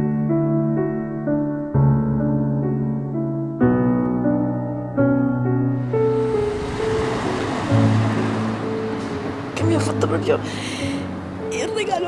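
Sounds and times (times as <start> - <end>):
slow soft piano music: 0.0 - 12.0.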